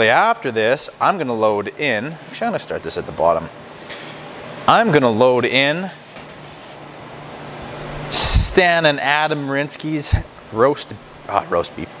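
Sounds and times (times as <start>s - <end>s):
dehydrator fans whirring: 0.0s - 12.0s.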